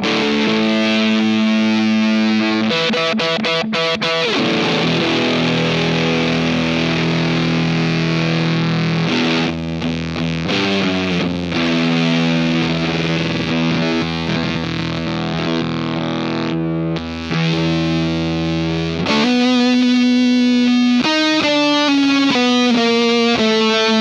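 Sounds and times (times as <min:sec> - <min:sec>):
distorted electric guitar notes: 0:00.0 - 0:24.0.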